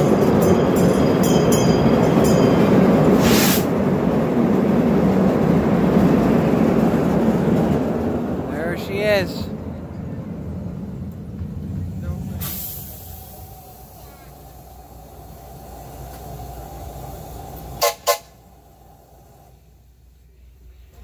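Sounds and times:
train rumbling: 0:00.0 - 0:21.0
locomotive whistle blasts: 0:17.8 - 0:18.4.

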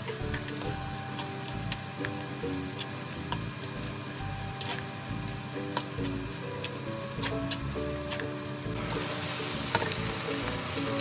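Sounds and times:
rice sizzling in a wok: 0:00.0 - 0:11.0
soft background music: 0:00.0 - 0:11.0.

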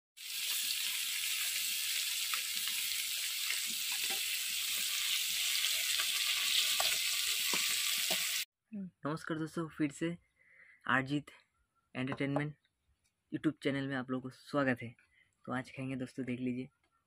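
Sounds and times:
fish sizzling in hot oil: 0:00.2 - 0:08.5
spatula scraping and tapping pan: 0:06.0 - 0:08.4.

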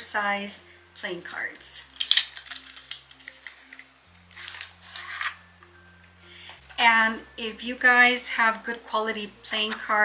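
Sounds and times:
soft background music: 0:00.0 - 0:10.0
woman speaking: 0:06.8 - 0:10.0.

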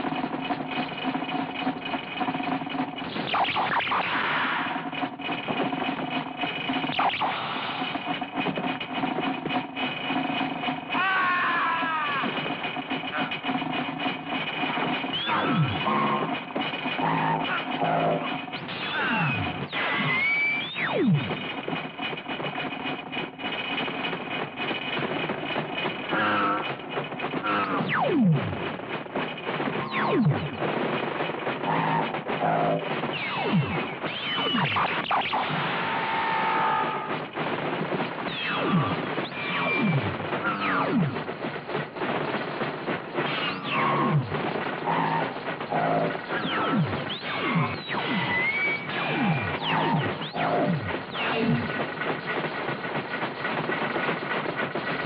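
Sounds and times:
electronic film score: 0:00.0 - 0:55.0.

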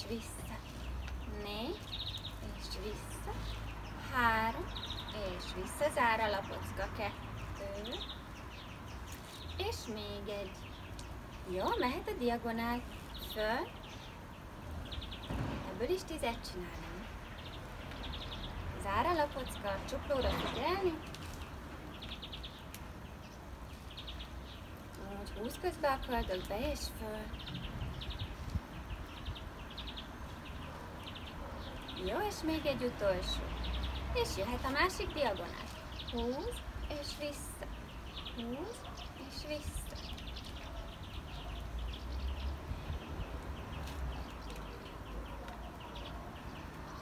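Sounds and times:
small bird chirping trill: 0:00.0 - 0:47.0.

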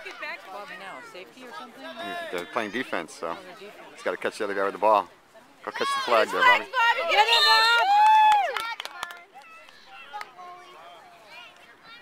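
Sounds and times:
crowd shouting and cheering: 0:05.7 - 0:12.0.

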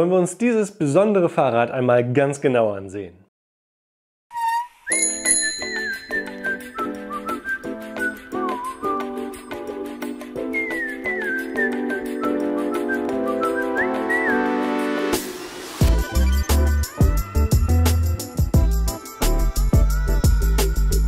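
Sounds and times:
whistled melody: 0:04.3 - 0:15.0, 0:15.8 - 0:19.1
short high chime: 0:04.9 - 0:06.9.

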